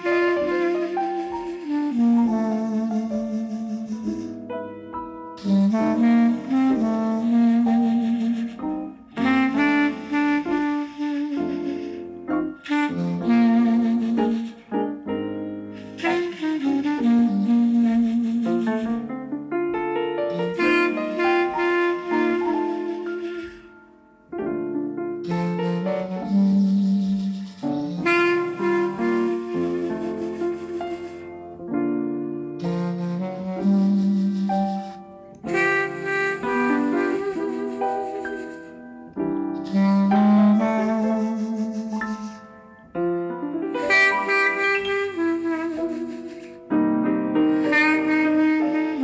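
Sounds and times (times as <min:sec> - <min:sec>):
jazz clarinet ballad: 0:00.0 - 0:49.0
soft piano accompaniment: 0:00.0 - 0:49.0.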